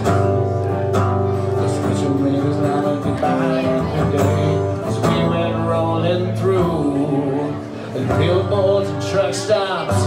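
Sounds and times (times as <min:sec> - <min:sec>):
acoustic guitar strumming: 0:00.0 - 0:10.0
man singing: 0:00.0 - 0:10.0.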